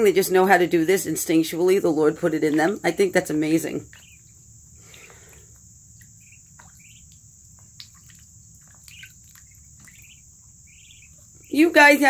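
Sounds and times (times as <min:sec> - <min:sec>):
ducklings peeping: 0:00.0 - 0:12.0.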